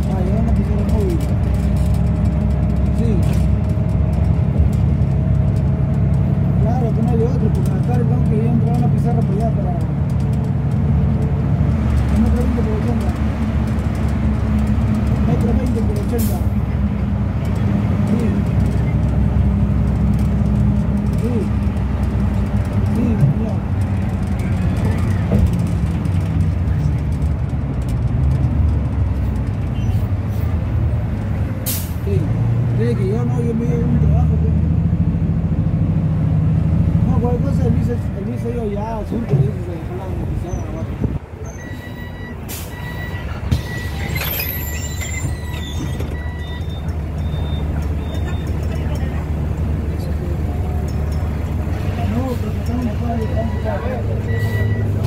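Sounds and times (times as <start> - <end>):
bus engine drone: 0.0 - 55.0.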